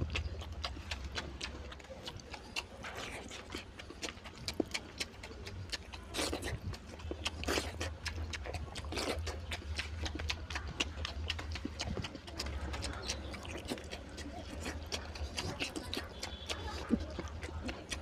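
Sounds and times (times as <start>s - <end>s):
wet chewing and lip smacks: 0.0s - 18.0s.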